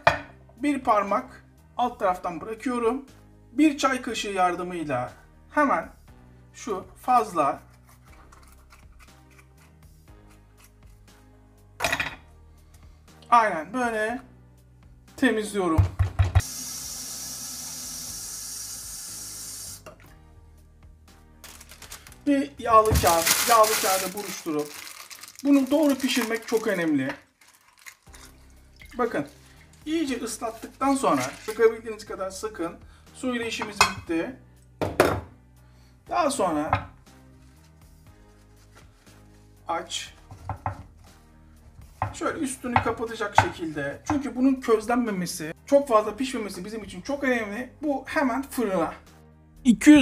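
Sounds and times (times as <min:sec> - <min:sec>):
faint background music: 0:00.0 - 0:50.0
tap water running: 0:16.2 - 0:20.1, 0:27.1 - 0:29.8
paper crinkling: 0:21.4 - 0:28.3, 0:29.1 - 0:31.7.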